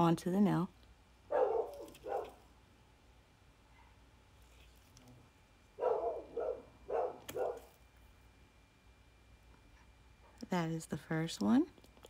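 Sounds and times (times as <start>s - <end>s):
dog barking: 1.3s - 2.4s, 5.8s - 7.7s.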